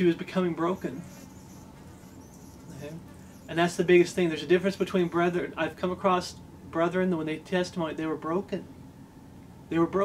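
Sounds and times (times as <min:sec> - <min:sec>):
faint buzzing of insects: 0:00.4 - 0:06.6.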